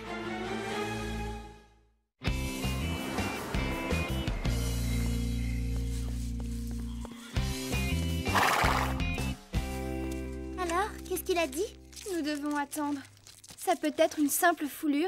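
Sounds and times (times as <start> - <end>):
horse sound effect: 8.2 - 9.1.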